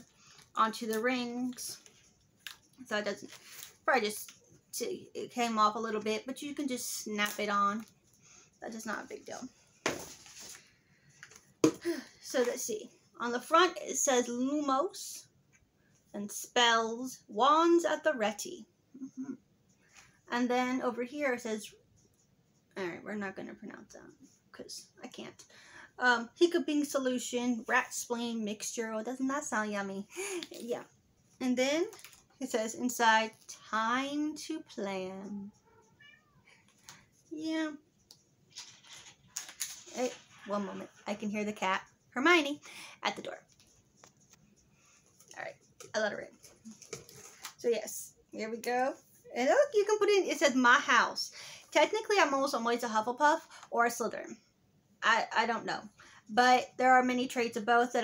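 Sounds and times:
rustle of pages and plastic cover: 0:00.2 - 0:04.4, 0:09.8 - 0:11.5, 0:31.8 - 0:32.6, 0:38.5 - 0:41.7, 0:43.4 - 0:47.8.

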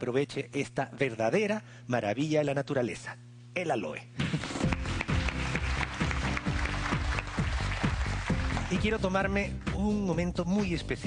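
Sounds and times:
music with steady beat: 0:04.2 - 0:11.0
audience applauding: 0:04.4 - 0:09.1.

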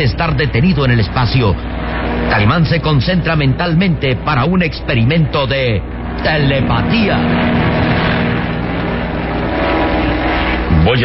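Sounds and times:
propeller plane engines droning: 0:00.0 - 0:11.0.

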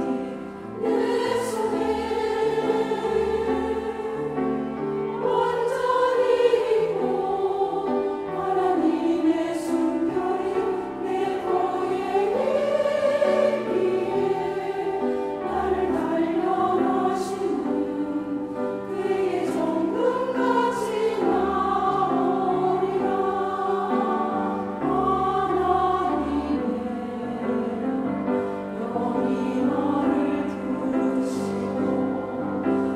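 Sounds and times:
women's choir singing a hymn: 0:00.0 - 0:32.9.

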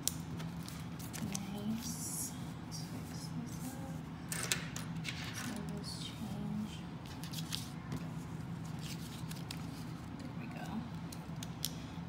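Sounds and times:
steady low hum: 0:00.0 - 0:12.0
banknotes rustling: 0:07.0 - 0:10.3.

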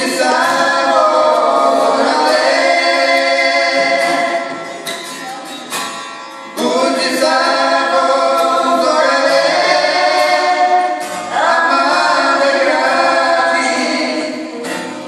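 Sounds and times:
man and woman singing: 0:00.0 - 0:04.5, 0:06.6 - 0:15.0
strummed acoustic guitar: 0:00.0 - 0:15.0.

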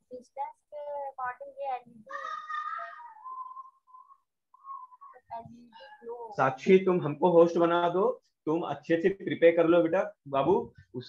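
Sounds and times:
speech over video call: 0:00.0 - 0:11.0.

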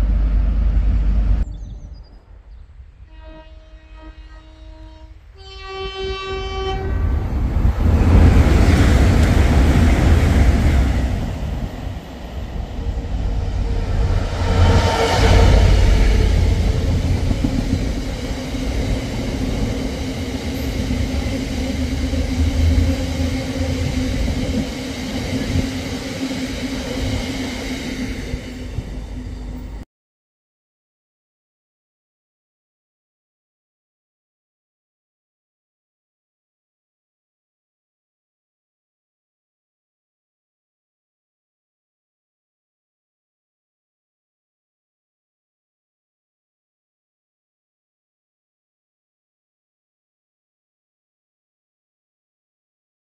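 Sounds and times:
two-tone train horn: 0:03.0 - 0:07.0
locomotive passing at speed: 0:06.9 - 0:29.8.

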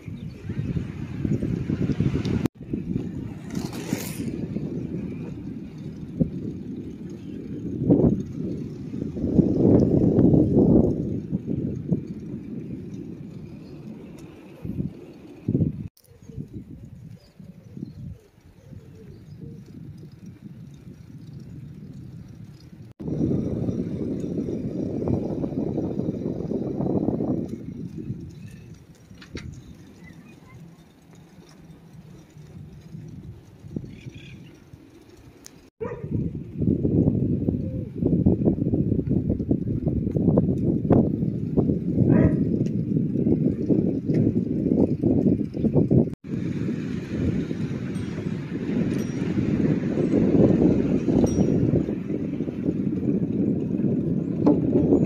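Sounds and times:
wind buffeting microphone: 0:00.0 - 0:55.0
tyres rumbling over pavement: 0:38.0 - 0:55.0.

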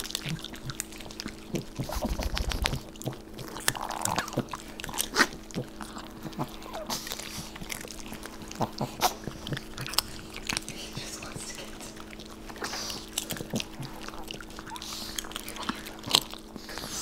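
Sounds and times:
dogs crunching popcorn: 0:00.0 - 0:17.0
faint steady hum: 0:00.0 - 0:17.0.

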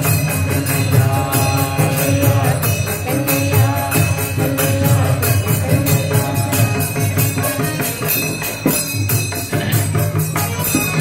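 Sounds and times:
jingling percussion beat: 0:00.0 - 0:11.0
man singing long notes: 0:00.7 - 0:07.9.

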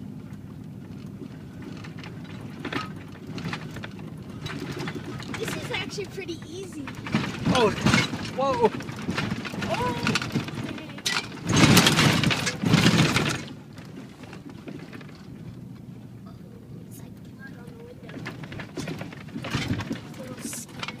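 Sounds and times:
engine and road hum: 0:00.0 - 0:21.0
light rattles: 0:00.1 - 0:21.0.

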